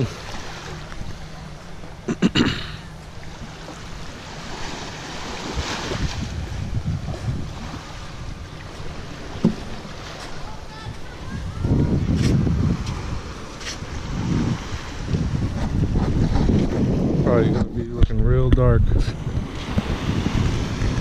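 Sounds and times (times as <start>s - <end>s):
small waves washing onto beach: 0.0s - 2.1s, 2.7s - 21.0s
wind gusting on microphone: 5.3s - 9.8s, 10.4s - 21.0s.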